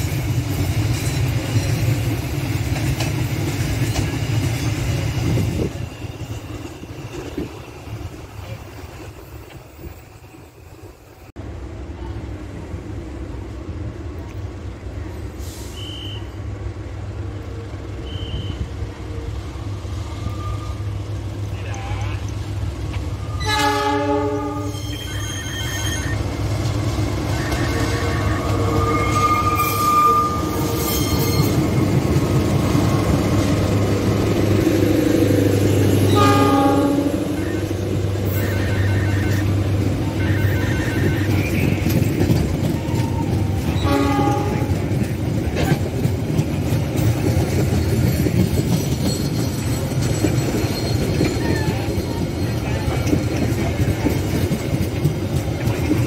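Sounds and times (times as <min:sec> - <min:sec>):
train rumbling on rails: 0:00.0 - 0:56.0
locomotive horn blasts: 0:23.4 - 0:26.1, 0:27.3 - 0:31.3, 0:36.1 - 0:41.9, 0:43.8 - 0:44.8.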